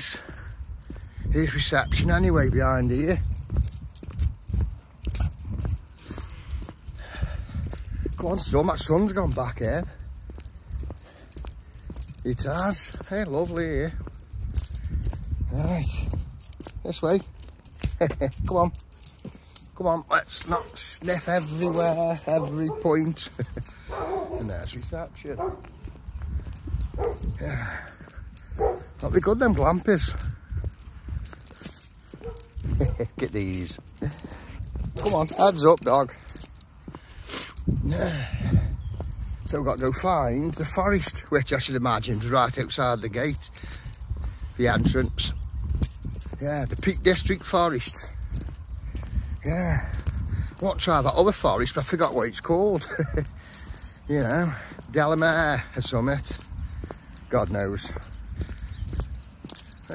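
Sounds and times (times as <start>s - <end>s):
footsteps on tarmac: 0.0s - 59.9s
light metallic jingling: 0.0s - 59.9s.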